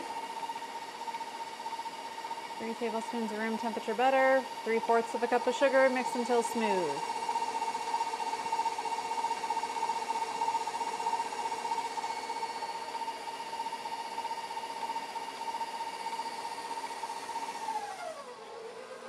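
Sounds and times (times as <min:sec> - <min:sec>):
stand mixer whirring: 0:00.0 - 0:19.0.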